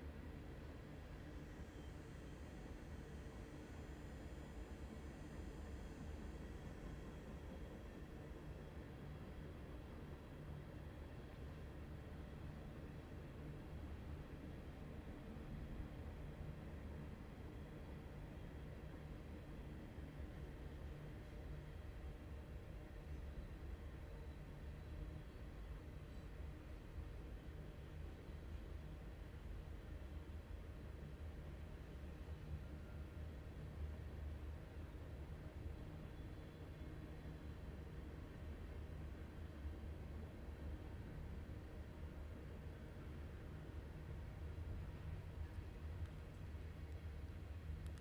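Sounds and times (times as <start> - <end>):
faint thin steady tones: 0.0 - 48.0.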